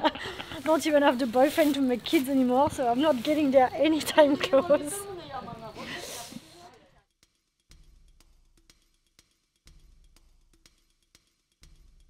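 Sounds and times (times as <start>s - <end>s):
breathy hiss: 5.1s - 6.7s.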